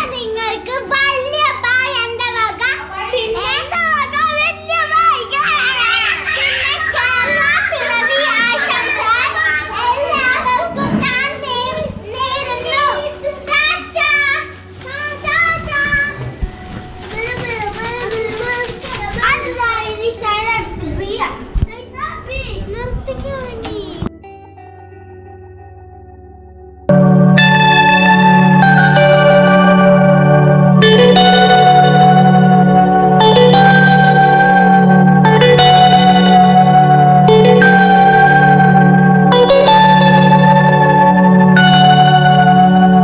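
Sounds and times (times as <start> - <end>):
children shouting and chattering: 0.0 - 24.1, 27.4 - 43.0.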